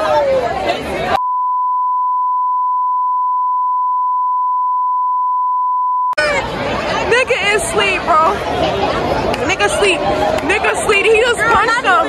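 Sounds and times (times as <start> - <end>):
crowd chatter: 0.0 - 1.2, 6.2 - 12.0
censor bleep tone: 1.2 - 6.2.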